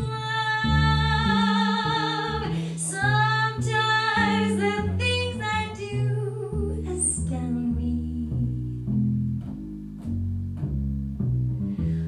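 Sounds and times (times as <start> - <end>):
woman singing jazz: 0.0 - 9.0.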